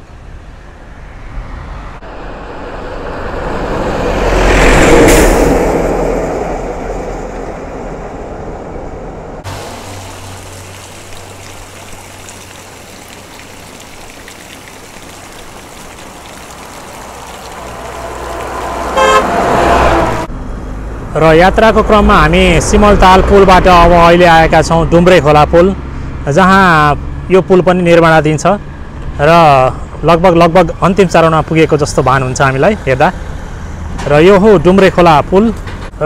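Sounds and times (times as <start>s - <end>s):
vehicle passing: 0.6s - 24.6s
water pouring into stone channel: 9.5s - 19.8s
bus horn: 17.8s - 20.3s.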